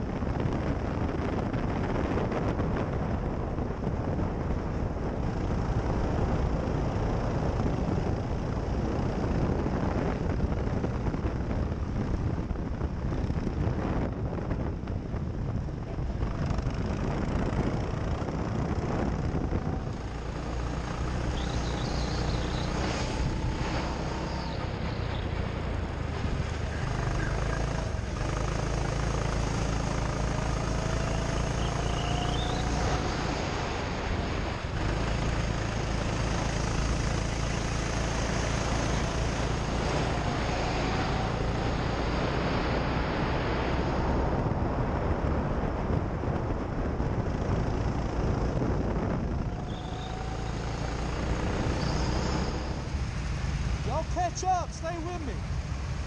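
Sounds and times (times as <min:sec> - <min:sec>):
wind rumble on microphone: 0:00.0 - 0:56.0
go-kart motor accelerating: 0:16.0 - 0:54.0.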